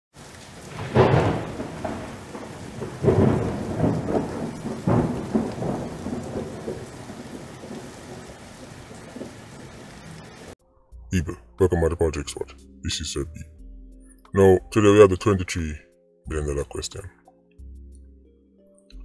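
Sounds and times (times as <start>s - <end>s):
steady rain: 0.1s - 10.6s
thunder crashes: 0.5s - 10.6s.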